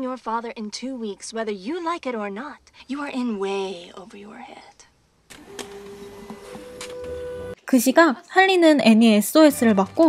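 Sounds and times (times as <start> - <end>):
woman speaking: 0.0 - 4.9, 7.6 - 10.0
fax machine printing: 5.3 - 7.6.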